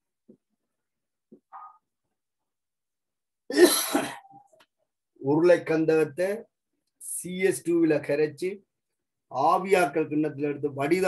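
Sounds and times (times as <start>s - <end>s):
person coughing: 3.5s - 4.4s.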